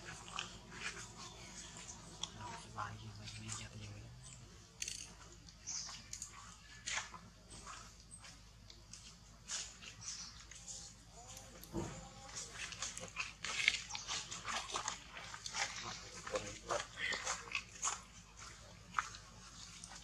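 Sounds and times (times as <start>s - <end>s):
crackling on dry leaf litter: 8.6s - 20.0s.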